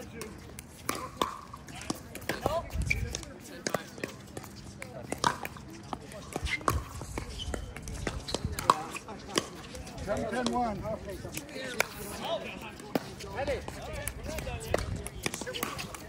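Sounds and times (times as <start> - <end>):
paddles hitting plastic ball: 0.0 - 9.6.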